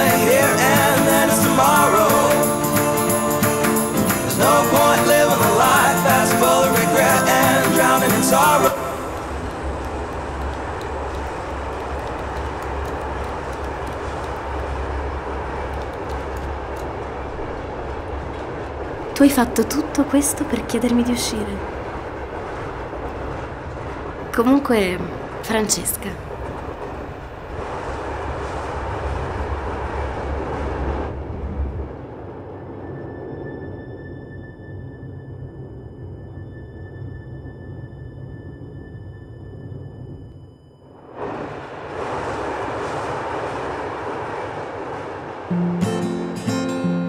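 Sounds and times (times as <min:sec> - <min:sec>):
train carriage rumble and hiss: 0:00.0 - 0:33.0, 0:41.0 - 0:47.0.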